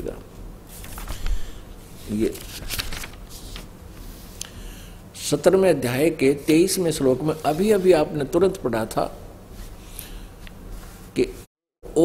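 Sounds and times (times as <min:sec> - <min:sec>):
book pages rustling: 0:00.7 - 0:04.4.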